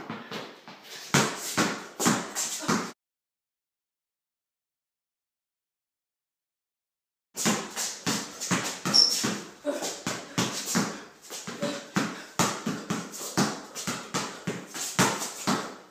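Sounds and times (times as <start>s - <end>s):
basketball bouncing on concrete: 0.0s - 0.5s, 1.1s - 3.0s, 7.4s - 15.8s
high squeaks: 8.9s - 9.3s.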